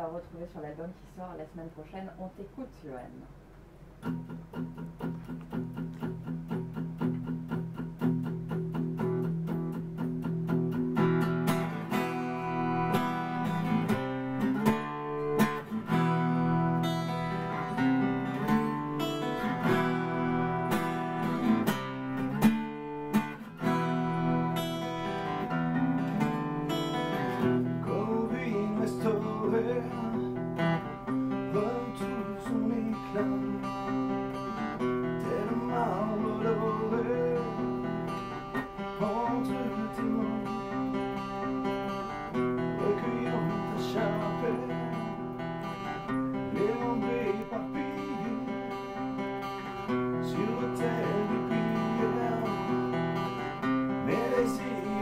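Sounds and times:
acoustic guitar strumming chords: 3.9s - 55.0s
man singing: 27.4s - 30.6s, 31.3s - 34.2s, 34.8s - 41.1s, 42.4s - 45.4s, 46.3s - 49.0s, 49.8s - 53.0s, 53.9s - 55.0s.

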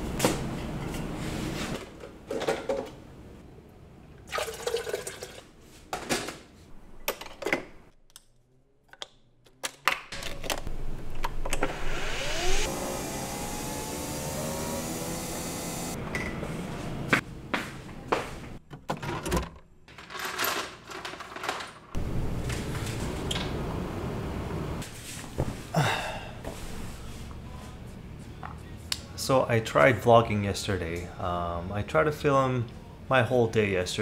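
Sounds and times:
water running into a vessel: 4.3s - 5.4s.

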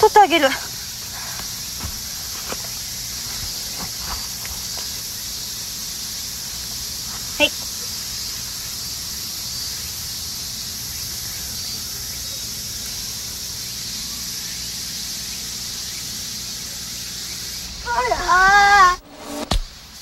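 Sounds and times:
insect chorus drone: 0.0s - 20.0s.

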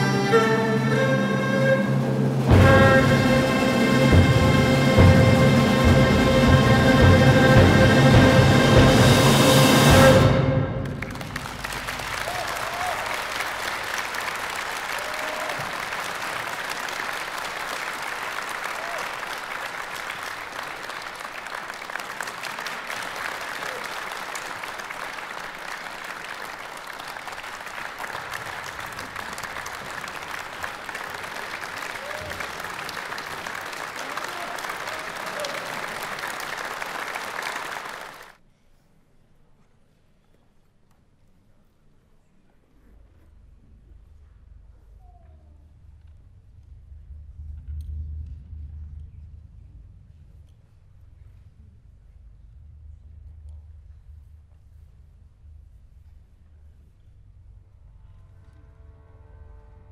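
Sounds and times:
audience applauding: 2.5s - 38.4s.

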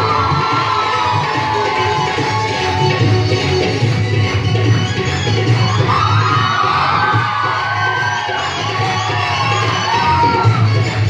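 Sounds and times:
audience cheering: 0.0s - 3.3s, 5.6s - 11.0s.

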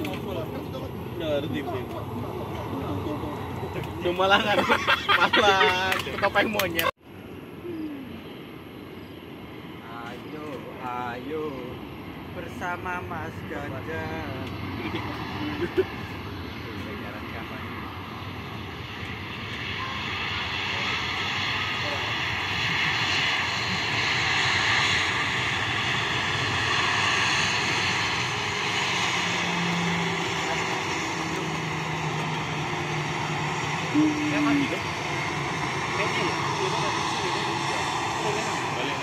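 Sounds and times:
jet airliner passing with whine: 0.0s - 39.0s.

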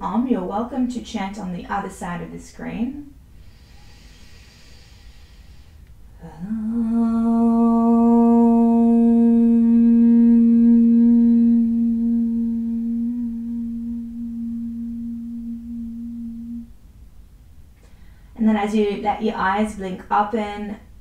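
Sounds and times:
woman chanting om: 6.1s - 16.7s.

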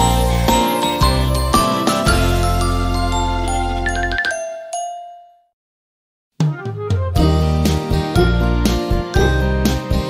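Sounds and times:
children's instrumental music: 0.0s - 5.5s, 6.4s - 10.0s.

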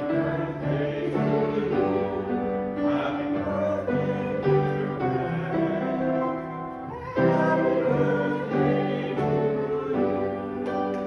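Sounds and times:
congregation singing: 0.0s - 11.0s
piano accompaniment: 0.0s - 11.0s.

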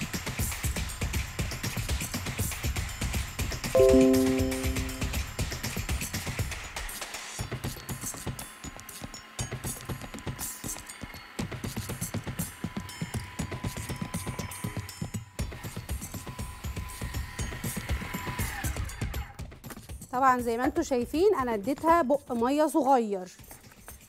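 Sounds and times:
background music with beat: 3.8s - 5.2s.

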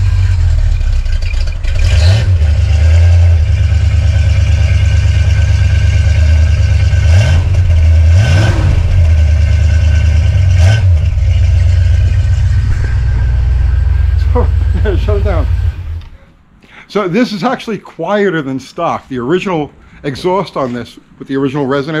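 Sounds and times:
car engine idling: 0.0s - 16.2s
engine throttle blips: 0.0s - 16.4s.

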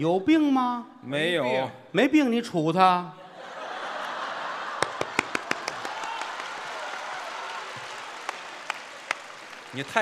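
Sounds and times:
audience applause: 4.0s - 10.0s
sharp hand claps near microphone: 4.8s - 10.0s.

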